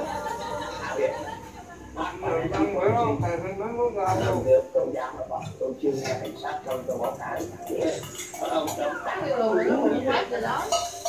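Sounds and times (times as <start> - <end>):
spoons clinking against bowls: 6.0 - 9.0, 10.6 - 11.0.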